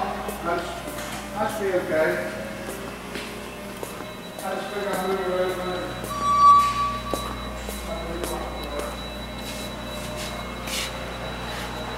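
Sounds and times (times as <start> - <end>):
low machinery hum: 0.0 - 11.9
faint high whine: 4.1 - 11.9
soft footsteps scuffing: 7.0 - 11.0.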